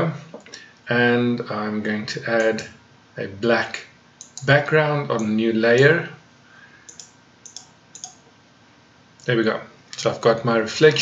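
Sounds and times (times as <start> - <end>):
computer mouse button clicking: 6.9 - 8.2.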